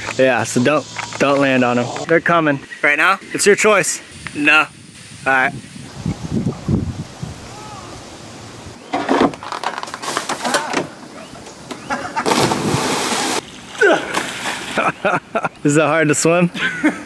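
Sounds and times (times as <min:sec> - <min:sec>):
splash into river water: 0:12.2 - 0:14.9.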